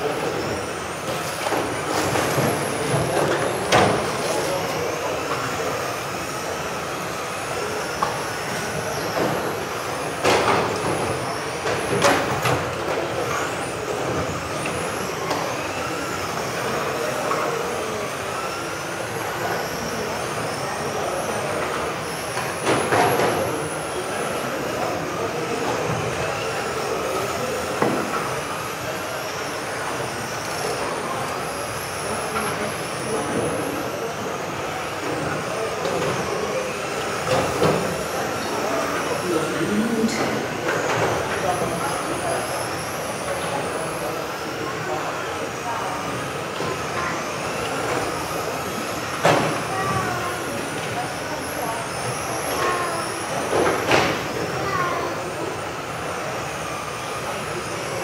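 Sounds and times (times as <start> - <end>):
radio-controlled car motors whining: 0.0 - 58.0.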